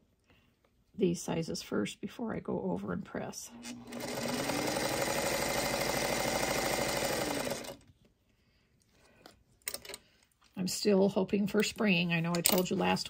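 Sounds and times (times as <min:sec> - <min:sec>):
sewing machine stitching: 0:03.5 - 0:07.8.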